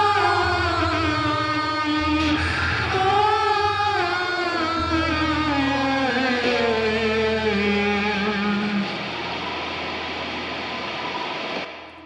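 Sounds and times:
static-like noise: 4.6s - 12.0s.

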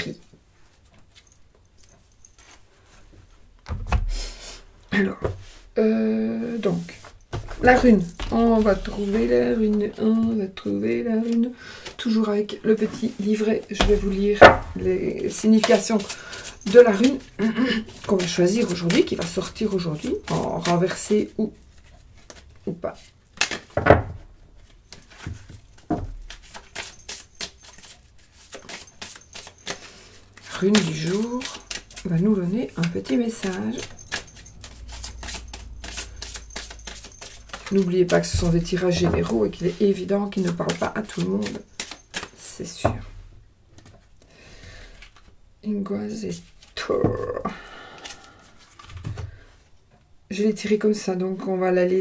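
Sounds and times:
cards being shuffled: 7.0s - 10.3s, 12.8s - 23.8s, 24.6s - 42.8s, 46.3s - 46.9s, 47.8s - 49.3s.

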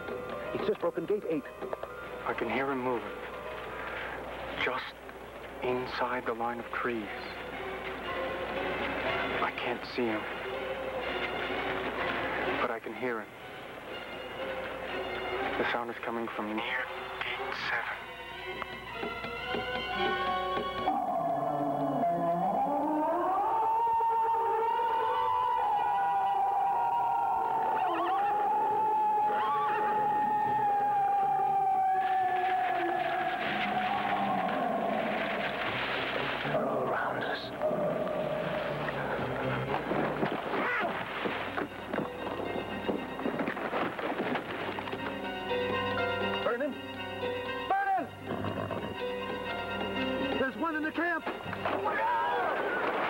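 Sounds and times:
harsh crackling noise: 2.3s - 15.7s, 27.4s - 45.4s
eerie wailing tone: 20.8s - 40.8s.

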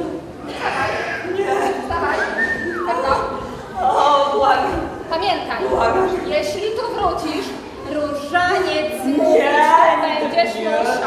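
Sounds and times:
voices on stage: 0.0s - 11.0s
high whistle-like tone: 2.2s - 3.0s.

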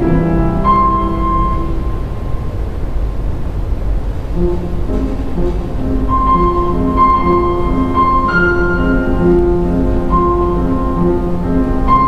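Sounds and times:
grand piano notes: 0.0s - 12.0s
steady low rumble: 0.0s - 12.0s.

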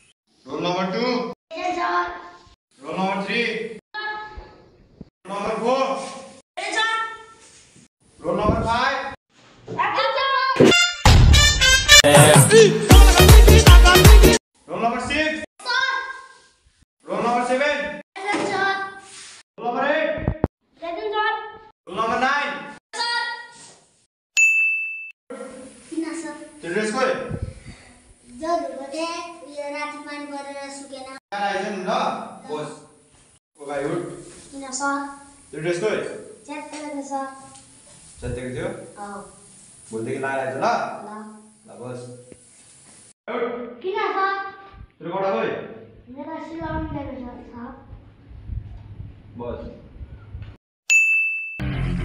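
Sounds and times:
background music: 10.6s - 14.4s
bright bell ding: 24.4s - 25.2s, 50.9s - 51.7s.

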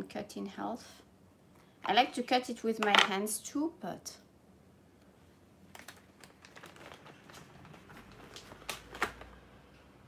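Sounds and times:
small crinkles and clicks: 5.7s - 9.4s.

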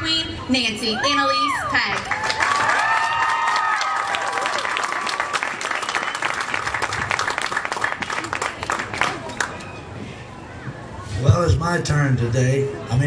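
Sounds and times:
people whooping: 0.9s - 6.6s
audience applauding: 1.9s - 9.6s.

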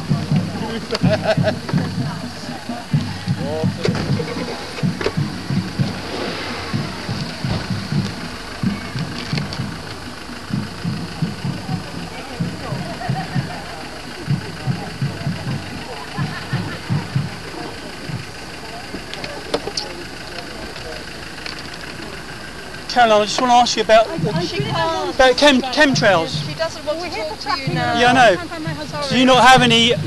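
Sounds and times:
outdoor background noise: 0.0s - 30.0s
microphone handling thumps: 3.0s - 9.9s.

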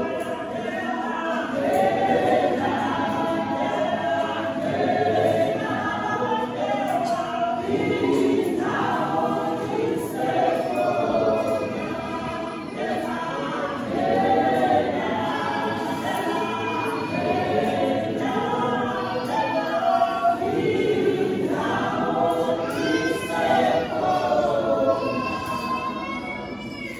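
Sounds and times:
women's choir singing: 0.0s - 26.9s.

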